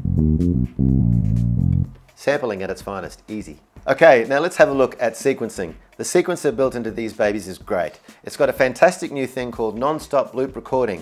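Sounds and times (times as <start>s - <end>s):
low bass-like synth notes: 0.0s - 2.0s.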